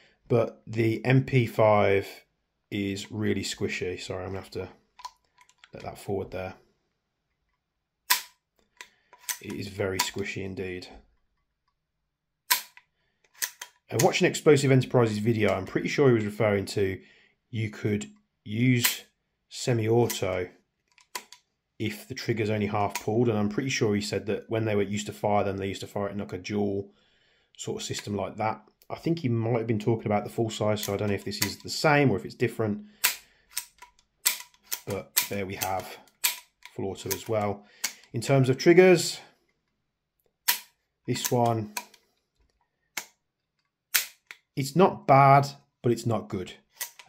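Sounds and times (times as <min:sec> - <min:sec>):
sharp metallic click: 0:08.1 - 0:10.2, 0:12.5 - 0:14.2, 0:33.0 - 0:38.1, 0:40.5 - 0:42.0, 0:43.9 - 0:44.5, 0:46.8 - 0:47.0.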